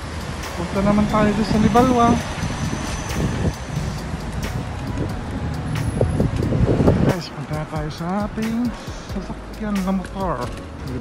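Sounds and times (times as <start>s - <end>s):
city street traffic: 0.0s - 11.0s
van driving past: 0.0s - 11.0s.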